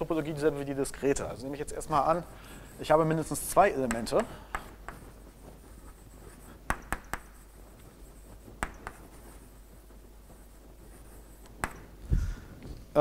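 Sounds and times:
chalk scratching on blackboard: 0:00.5 - 0:12.0
chalk tapping on board: 0:01.8 - 0:12.0.

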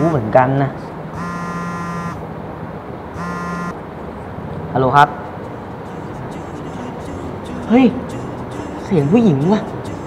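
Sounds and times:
phone buzzing: 0:01.1 - 0:02.2, 0:03.1 - 0:03.8.

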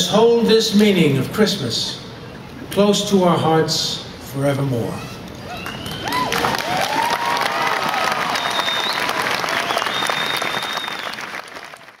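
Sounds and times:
large audience applauding: 0:05.5 - 0:12.0.

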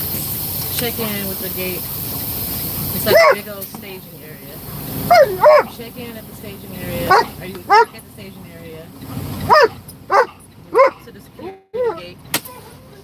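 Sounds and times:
dog barking in high yaps: 0:03.1 - 0:03.4, 0:05.0 - 0:05.7, 0:09.5 - 0:11.0.

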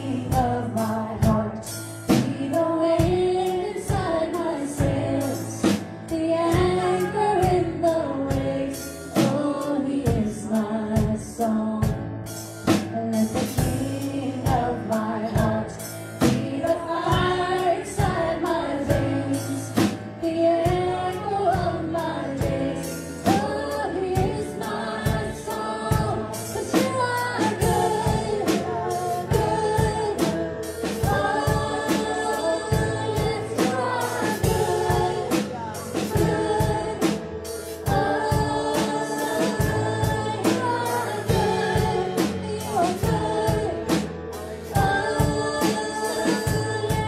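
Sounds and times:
keyboard: 0:00.0 - 0:47.0
women singing in harmony: 0:00.0 - 0:47.0.

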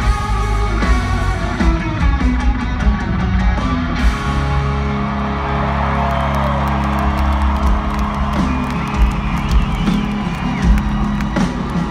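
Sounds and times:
rock band sustained chord: 0:00.0 - 0:08.9
crowd cheering and whistling: 0:04.0 - 0:11.9.

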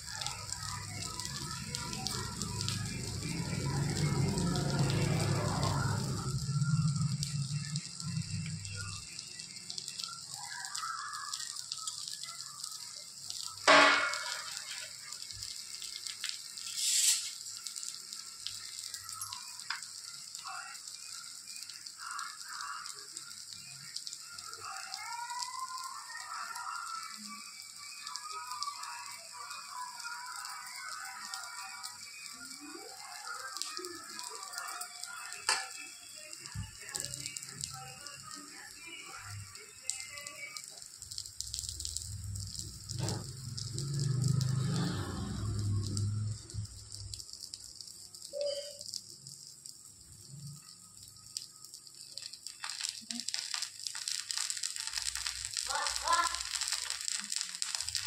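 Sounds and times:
oil sizzling on a hot pan: 0:00.0 - 0:58.0.

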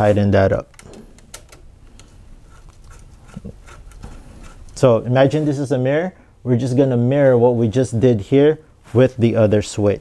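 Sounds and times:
screwdriver clicking and scraping metal: 0:02.5 - 0:04.8.

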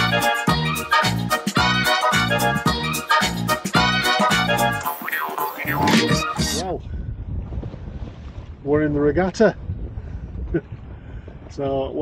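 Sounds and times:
man speaking: 0:04.9 - 0:06.8
wind buffeting microphone: 0:06.6 - 0:12.0.

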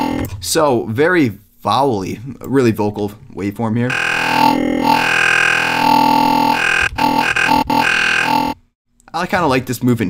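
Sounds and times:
synth bass note with vowel timbres: 0:03.9 - 0:08.6.

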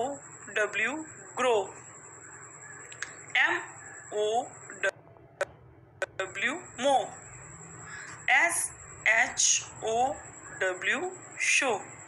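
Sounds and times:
faint high-pitched whine: 0:00.0 - 0:12.0
woman saying a letter: 0:08.3 - 0:11.8.

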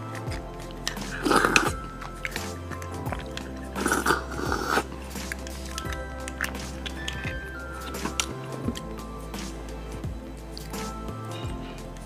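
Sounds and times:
person chewing wetly: 0:00.0 - 0:09.0
background music: 0:00.0 - 0:12.0.

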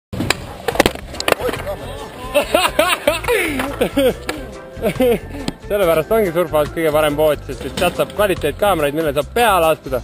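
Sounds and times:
skateboard clacks: 0:00.2 - 0:01.7
skateboard wheels rolling on concrete: 0:00.2 - 0:09.8.

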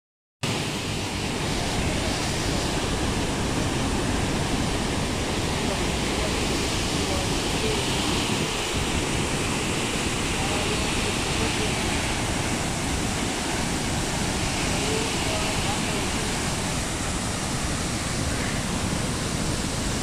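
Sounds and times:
waterfall rushing water: 0:00.4 - 0:20.0.

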